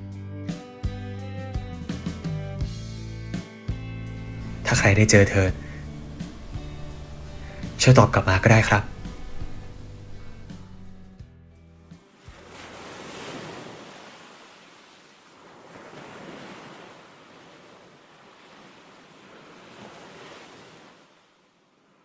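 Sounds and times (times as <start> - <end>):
wind: 3.4 - 22.0
sea waves washing in: 3.9 - 11.2, 12.1 - 22.0.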